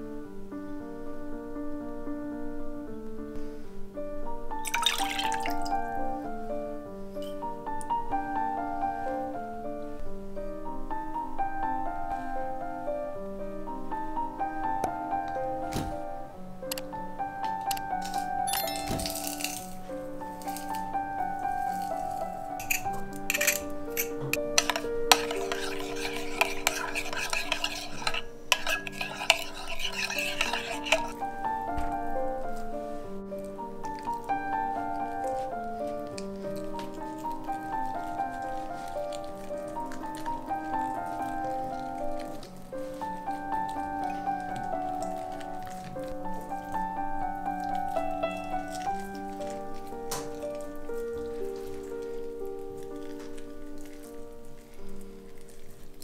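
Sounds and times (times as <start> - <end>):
soft background music: 0.0 - 56.0
fork clinking against glass: 18.5 - 19.7, 22.6 - 31.2
fork whisking in glass bowl: 21.6 - 31.3, 36.5 - 46.9
wet crackling of chicken skin: 47.5 - 56.0.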